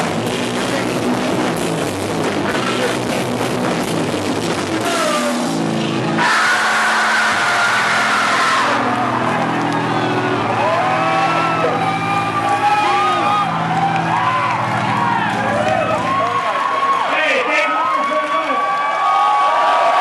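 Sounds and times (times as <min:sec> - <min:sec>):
drum and guitar hits: 0:00.0 - 0:09.6
guitar amplifiers droning: 0:00.0 - 0:17.5
crowd cheering and yelling: 0:02.3 - 0:20.0.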